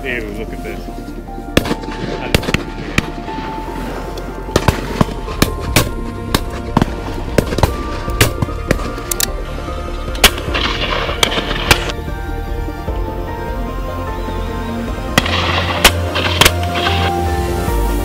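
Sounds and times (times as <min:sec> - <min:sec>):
background music: 0:00.0 - 0:18.0
shotgun shots: 0:01.6 - 0:03.2, 0:04.5 - 0:09.0.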